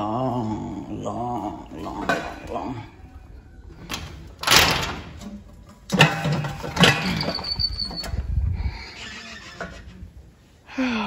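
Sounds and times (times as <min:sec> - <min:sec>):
screen door squeal: 0:06.8 - 0:10.0.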